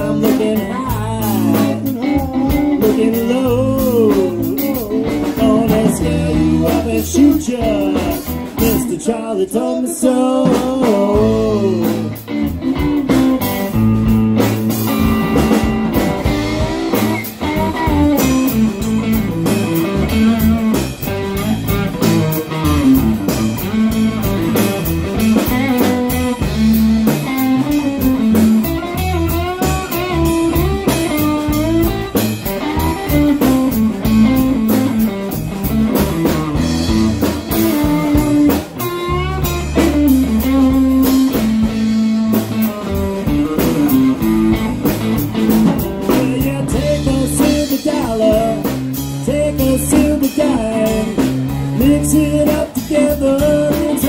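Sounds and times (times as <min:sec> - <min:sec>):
drum kit steady beat: 0:00.0 - 0:09.2, 0:10.4 - 0:54.0
electric bass: 0:00.0 - 0:54.0
electric guitar lead with bent notes: 0:00.0 - 0:54.0.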